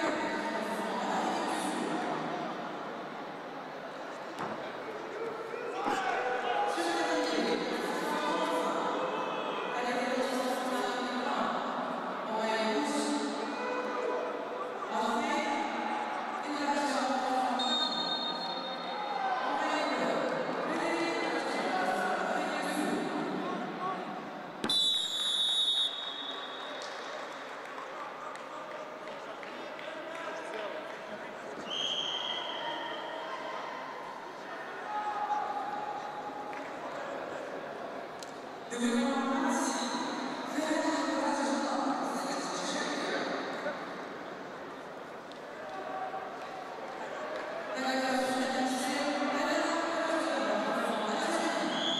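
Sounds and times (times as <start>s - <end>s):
referee whistle blast: 17.6s - 19.1s, 24.6s - 26.8s, 31.6s - 33.2s.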